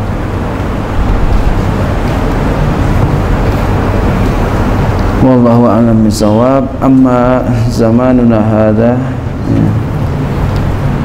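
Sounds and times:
loud rushing noise: 0.0 - 11.0
low even hum: 0.0 - 11.0.

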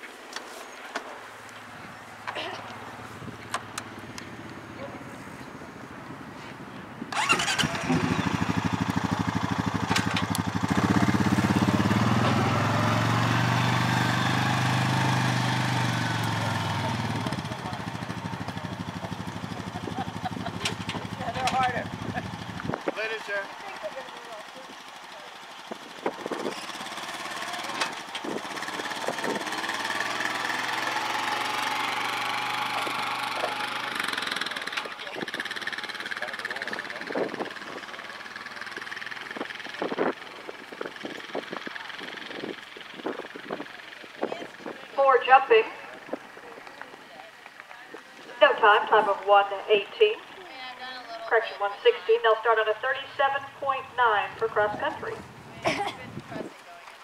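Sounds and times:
small vehicle engine running: 7.1 - 44.8
fainter engine running: 7.1 - 46.7, 48.4 - 55.8.

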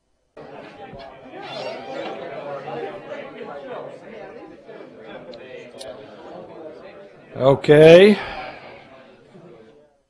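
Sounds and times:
chatter of many students: 0.4 - 10.0.

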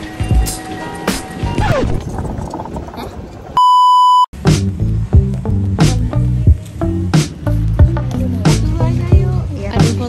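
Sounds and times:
background music with steady beat: 0.0 - 1.6, 4.4 - 10.0
steady bleep tone: 3.6 - 4.3.

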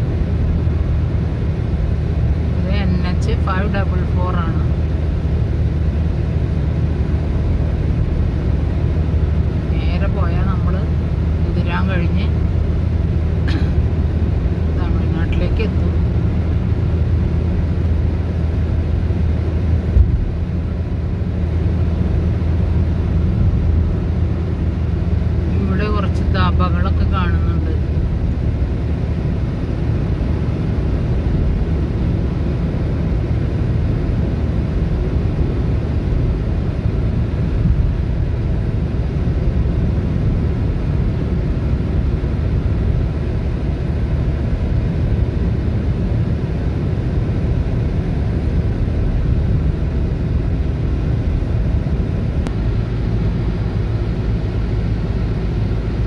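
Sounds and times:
car engine and tyres rumbling: 0.0 - 56.0
low thump: 19.9 - 20.3.

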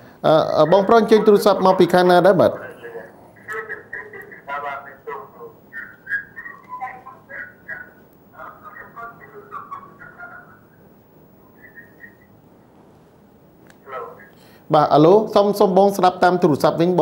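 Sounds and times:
person talking over telephone line: 0.3 - 10.8, 11.4 - 12.3, 13.8 - 17.0.

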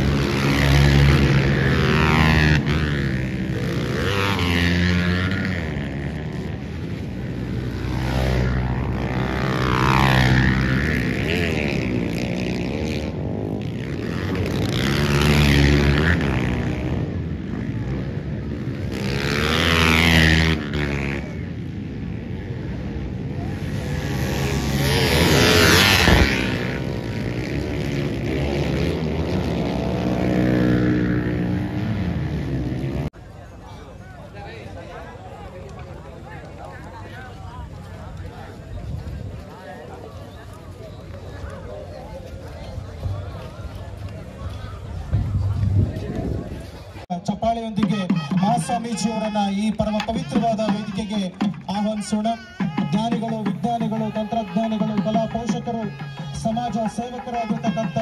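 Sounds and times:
motorcycles revving past: 0.0 - 33.2.

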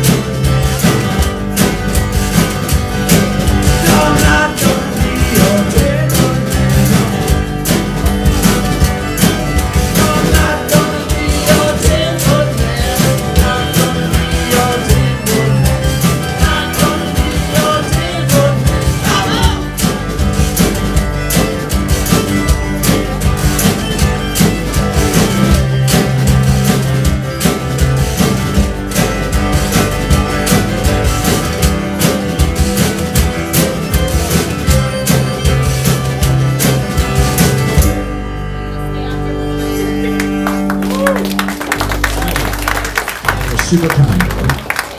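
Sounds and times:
acoustic guitar strumming: 0.0 - 42.1
people singing: 3.7 - 7.0, 9.8 - 19.8
fiddle: 6.3 - 28.3, 28.9 - 41.1.

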